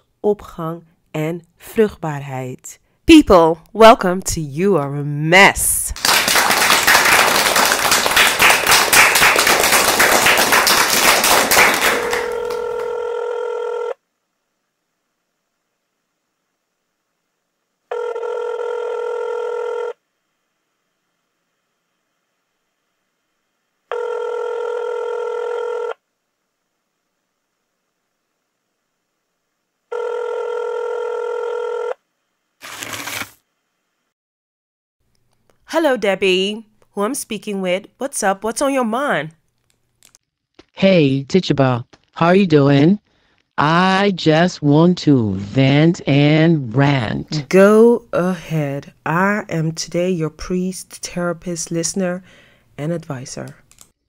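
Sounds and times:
steady telephone tone: 0:12.0 - 0:14.0, 0:17.9 - 0:20.0, 0:23.9 - 0:26.0, 0:29.9 - 0:32.0
telephone bell ringing: 0:12.0 - 0:14.0, 0:17.9 - 0:20.0, 0:23.9 - 0:26.0, 0:29.9 - 0:32.0.

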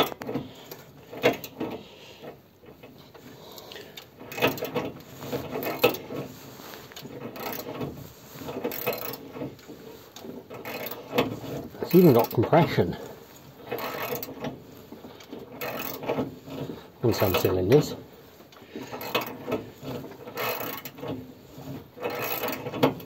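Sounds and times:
engine mechanical clatter: 0:00.0 - 0:23.0
ratchet wrench clicks: 0:08.7 - 0:09.2, 0:10.6 - 0:11.2, 0:13.7 - 0:14.4, 0:15.6 - 0:16.1, 0:20.4 - 0:21.0, 0:22.0 - 0:22.7.

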